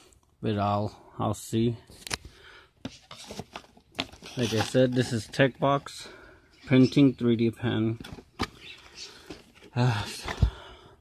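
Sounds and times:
light rustling of objects: 1.8s - 6.8s.

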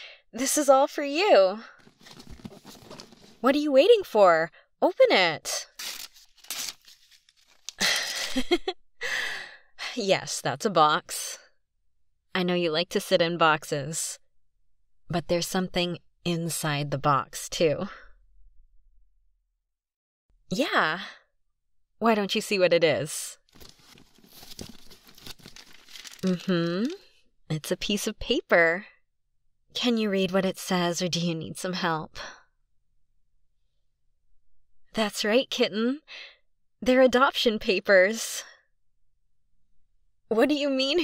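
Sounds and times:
paper tearing and crinkling: 5.7s - 7.8s, 23.5s - 27.0s.

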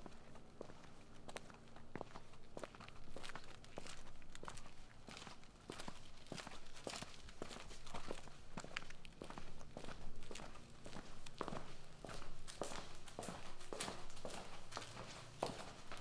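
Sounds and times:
footsteps on hard ground: 0.0s - 16.0s.

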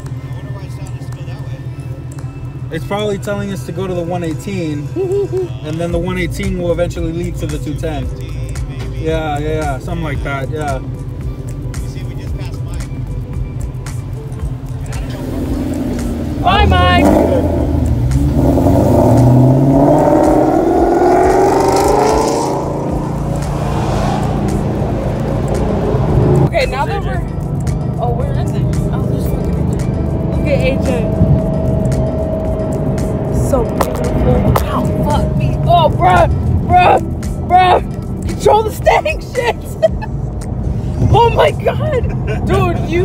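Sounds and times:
car engine accelerating: 0.0s - 43.0s.

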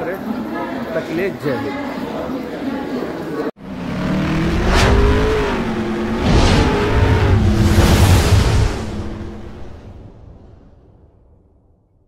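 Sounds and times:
droning engine-like tone: 3.6s - 9.9s
sweeping whooshes: 3.6s - 10.7s
low rumble: 3.6s - 11.2s.

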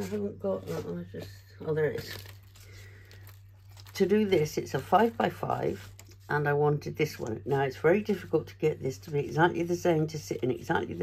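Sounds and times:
paper rustling: 0.0s - 11.0s.

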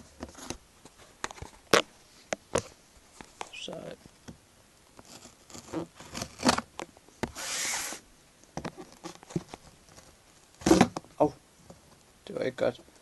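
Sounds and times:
tearing scrape: 5.0s - 6.7s, 7.3s - 8.0s.

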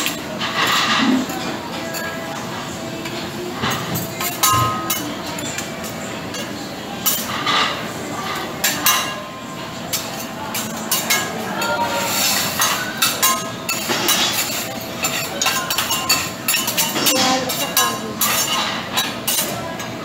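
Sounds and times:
metal spatulas scraping on griddle: 0.4s - 2.2s, 9.9s - 19.6s.

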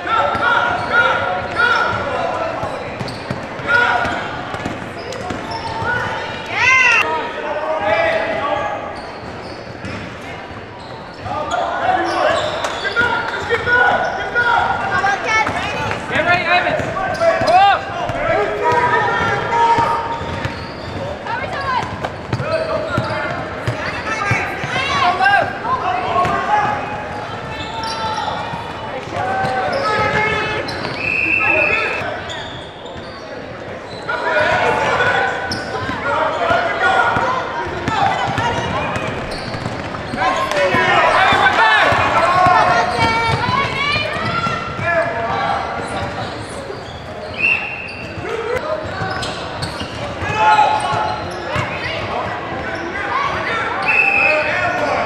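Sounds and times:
shouts and chatter: 0.0s - 55.0s
referee whistle: 30.7s - 32.8s, 46.8s - 48.2s, 53.8s - 54.5s.

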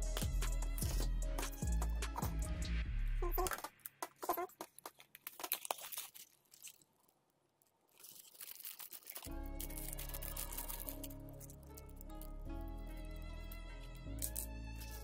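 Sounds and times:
background music sustained notes: 0.0s - 3.2s, 9.3s - 15.0s
plastic bag crinkling: 3.4s - 12.5s.

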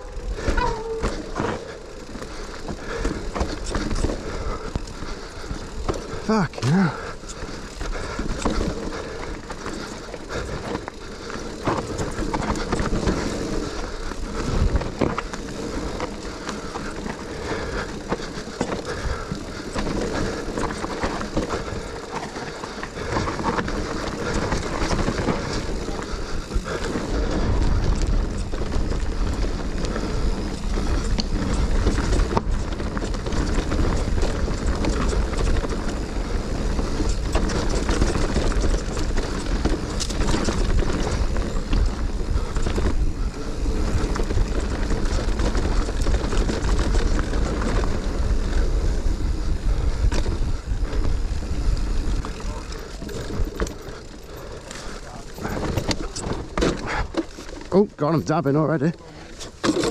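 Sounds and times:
bike rattling over bumps: 0.0s - 59.9s
bike tyres rolling and skidding on dirt: 0.0s - 59.9s.

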